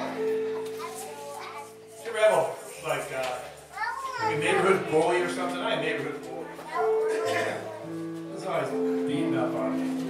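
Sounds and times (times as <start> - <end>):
children calling and chattering: 0.0 - 9.2.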